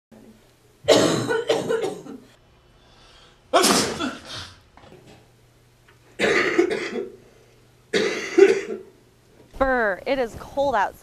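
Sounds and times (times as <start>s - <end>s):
person coughing: 0.9s - 2.3s, 3.5s - 4.6s, 6.2s - 7.2s, 7.9s - 8.9s.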